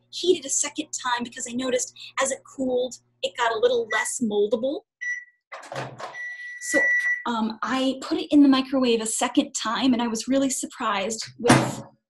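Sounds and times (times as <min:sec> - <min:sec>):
microwave oven beeping: 0:05.0 - 0:05.4, 0:06.0 - 0:07.3.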